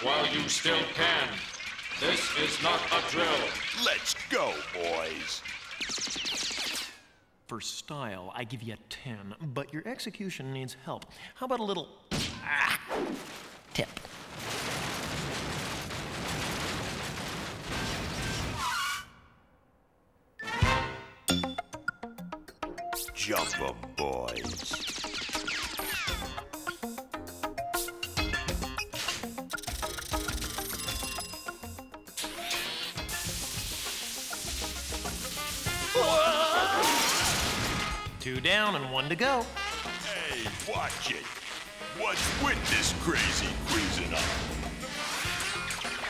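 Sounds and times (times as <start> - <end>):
cartoon music: 2.0 - 5.4, 20.4 - 27.0, 38.9 - 44.5
crackling electric hiss: 32.1 - 36.3, 39.8 - 46.0.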